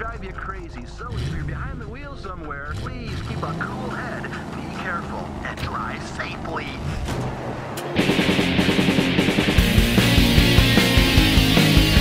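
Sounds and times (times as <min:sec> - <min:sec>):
rock song with electric guitar: 0:07.8 - 0:12.0.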